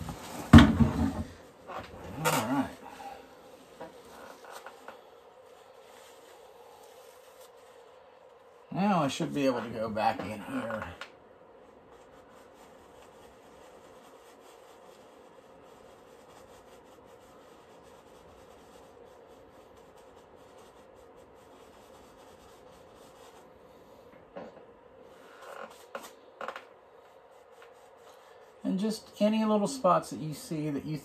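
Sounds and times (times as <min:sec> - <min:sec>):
paintbrush rubbing on canvas: 0:00.0 - 0:11.0, 0:11.6 - 0:24.1, 0:25.0 - 0:31.0.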